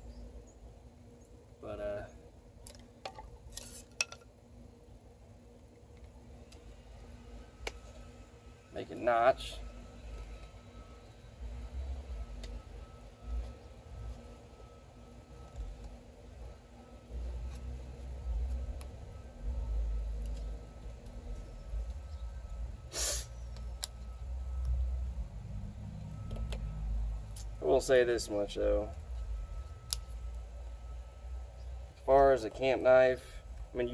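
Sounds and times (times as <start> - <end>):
sharp hissing knife stroke: 22.9 - 23.4.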